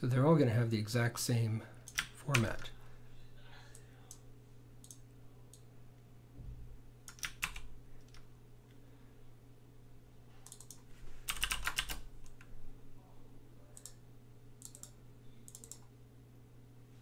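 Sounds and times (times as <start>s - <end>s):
typing on computer keyboard: 1.9s - 2.6s, 7.1s - 8.2s, 10.5s - 12.5s, 14.6s - 15.8s.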